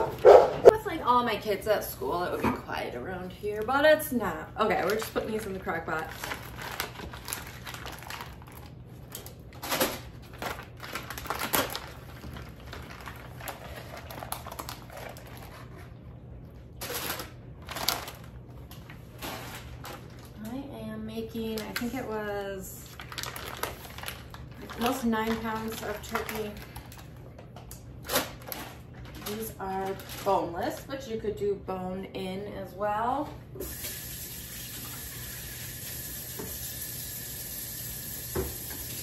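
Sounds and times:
plastic packaging crinkling: 0:04.7 - 0:20.6, 0:22.8 - 0:31.0.

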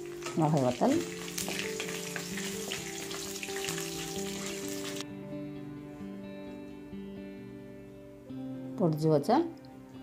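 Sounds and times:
hot oil sizzling and crackling: 0:00.0 - 0:05.0.

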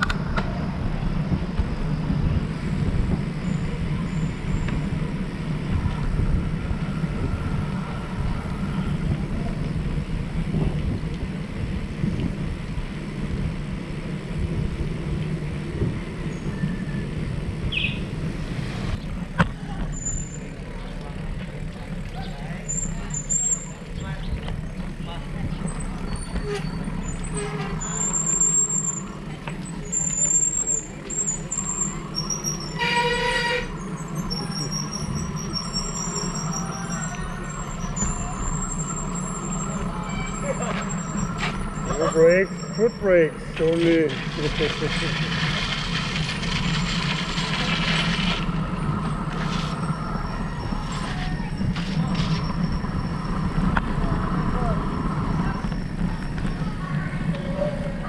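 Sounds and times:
voices: 0:00.0 - 0:13.4, 0:14.0 - 0:58.0
bicycle tyres rumbling on concrete: 0:00.0 - 0:58.0.

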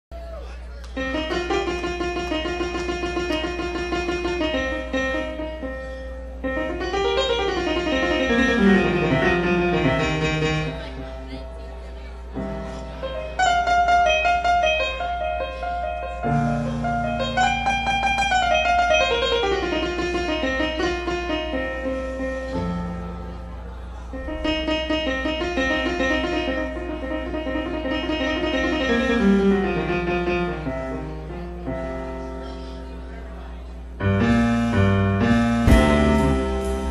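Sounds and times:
electric keyboard melody: 0:00.9 - 0:36.9
live band playing: 0:35.2 - 0:36.9.

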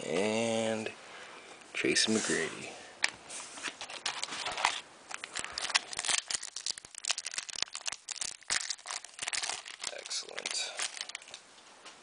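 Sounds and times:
foil wrapper crinkling and tearing: 0:03.7 - 0:11.4.

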